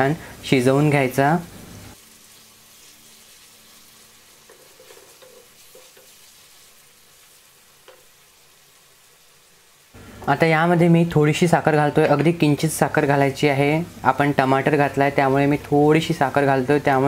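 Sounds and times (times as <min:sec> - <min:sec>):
sauce sizzling in oil: 0:00.0 - 0:17.0
spatula scraping a pan: 0:04.4 - 0:06.6.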